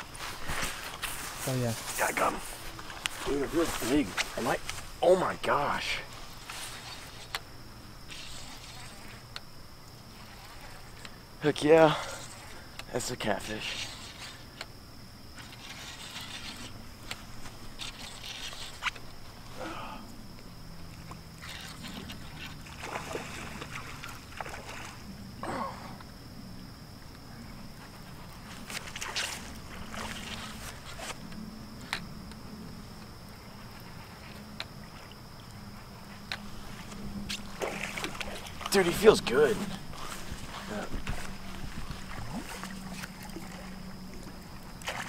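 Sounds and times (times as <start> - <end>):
soft hissy rustles: 0.0 - 14.7, 32.6 - 43.8
insects droning: 0.0 - 45.0
fish splashing at water surface: 37.3 - 39.0, 41.1 - 45.0.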